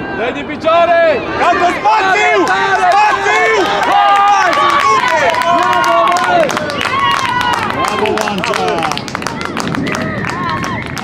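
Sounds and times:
spectators shouting: 0.0 - 11.0
people clapping: 2.4 - 11.0.

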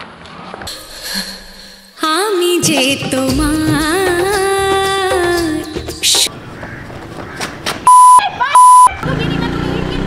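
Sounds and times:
censor bleep tone: 7.9 - 9.0.

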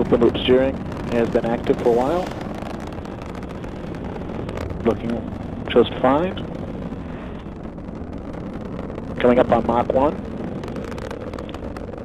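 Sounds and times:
man talking: 0.0 - 2.3, 4.8 - 6.4, 9.2 - 10.2
rocket engine roar: 0.0 - 12.0.

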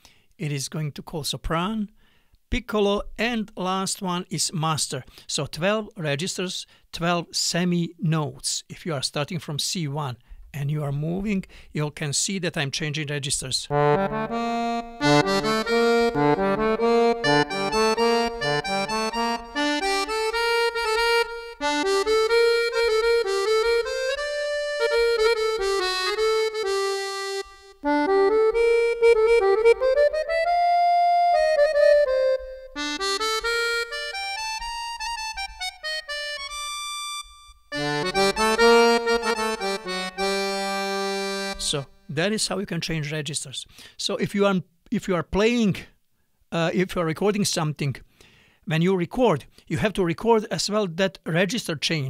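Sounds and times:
accordion playing: 13.7 - 42.1.

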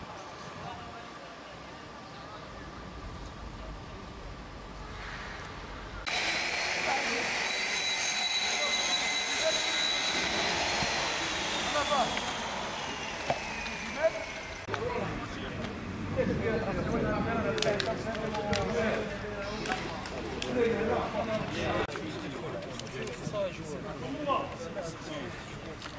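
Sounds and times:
high engine whine: 0.0 - 17.7
outdoor background noise: 0.0 - 25.9.

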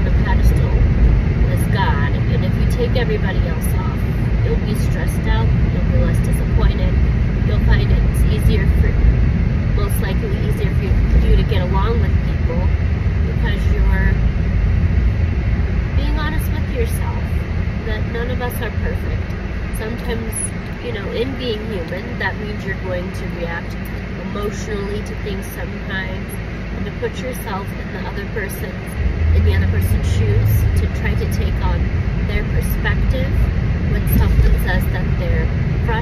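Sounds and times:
woman talking: 0.0 - 9.0, 9.8 - 14.2, 16.0 - 36.0
road and engine rumble: 0.0 - 36.0.

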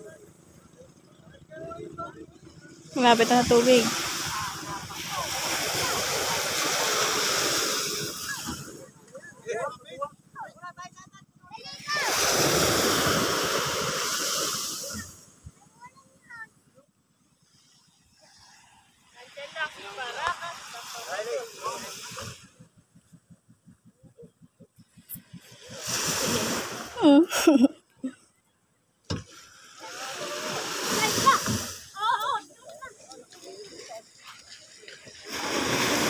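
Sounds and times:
surf breaking on sand: 3.0 - 9.2, 11.6 - 15.9, 18.2 - 22.6, 25.1 - 27.5, 29.2 - 36.0.

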